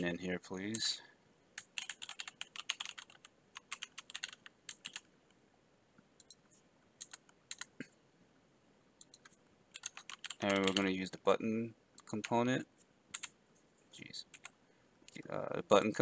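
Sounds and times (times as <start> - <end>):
computer keyboard typing: 1.6 - 5.1, 7.0 - 7.7, 9.0 - 10.9, 12.0 - 12.4, 13.1 - 13.3, 14.2 - 14.5.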